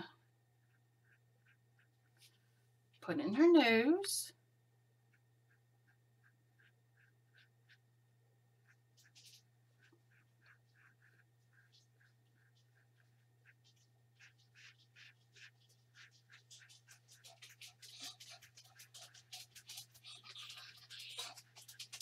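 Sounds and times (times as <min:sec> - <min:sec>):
faint regular peeping: 0:00.0 - 0:22.0
low electrical hum: 0:00.0 - 0:22.0
paintbrush strokes on paper: 0:00.6 - 0:04.0, 0:05.0 - 0:22.0.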